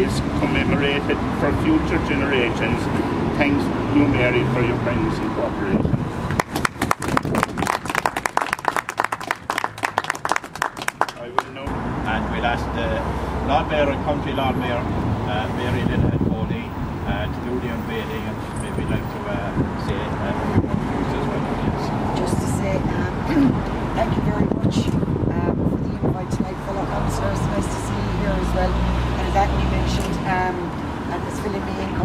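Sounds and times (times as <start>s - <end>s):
people talking indistinctly: 0.0s - 5.8s, 11.0s - 32.0s
road traffic rumble: 0.0s - 32.0s
people applauding: 6.3s - 11.7s.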